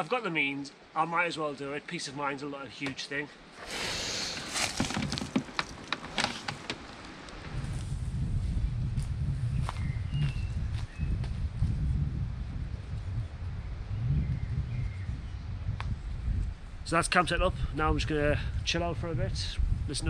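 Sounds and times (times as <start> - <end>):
cable lock clicking and rattling: 4.9 - 7.0
wind on microphone: 7.3 - 20.0.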